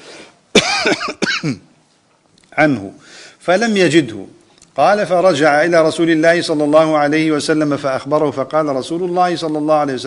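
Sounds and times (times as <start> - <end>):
man coughing: 0.5 - 1.7.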